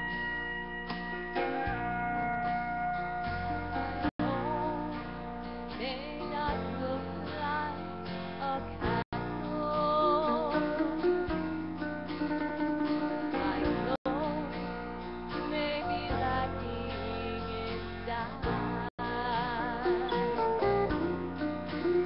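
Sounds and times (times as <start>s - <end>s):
guitar accompaniment: 0.0s - 22.0s
woman singing gospel: 4.2s - 5.0s, 5.8s - 7.8s, 8.4s - 10.8s, 13.3s - 14.6s, 15.5s - 20.5s.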